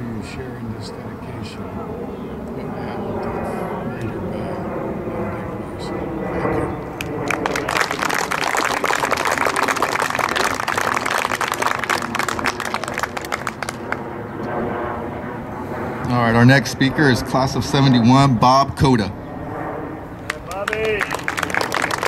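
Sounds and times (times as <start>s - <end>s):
steady engine drone: 0.0s - 22.0s
audience applauding: 7.0s - 14.0s, 20.3s - 22.0s.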